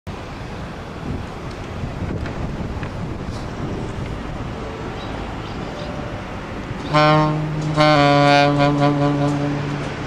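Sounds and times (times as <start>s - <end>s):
wind buffeting microphone: 0.9s - 7.8s.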